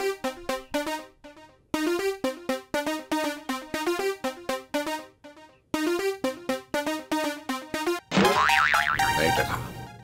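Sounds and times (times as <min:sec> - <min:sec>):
background music: 0:00.0 - 0:10.0
cartoon boing effect: 0:08.1 - 0:09.2.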